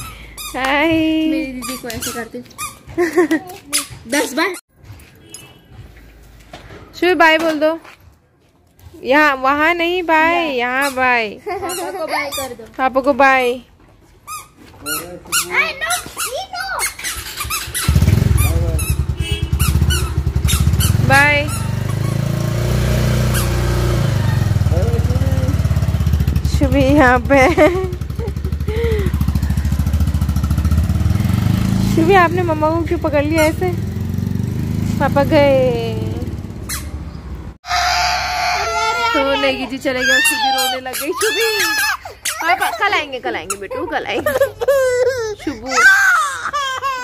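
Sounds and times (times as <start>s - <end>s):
motorcycle engine idling: 17.4s - 37.4s
young child wailing: 37.7s - 42.7s, 45.1s - 47.0s.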